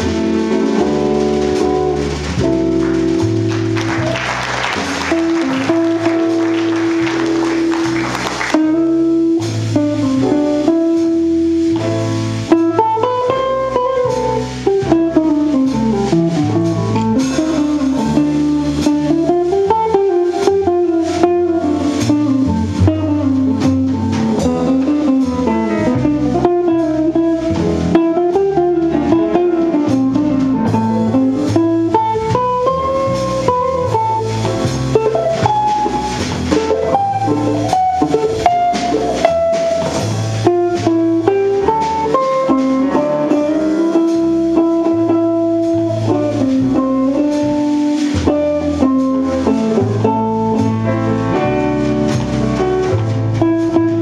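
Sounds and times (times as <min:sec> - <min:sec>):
double bass: 0:00.0 - 0:54.0
drums: 0:00.0 - 0:54.0.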